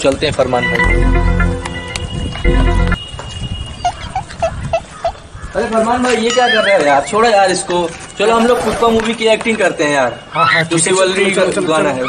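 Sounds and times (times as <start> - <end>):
animal calling: 8.2 - 9.1.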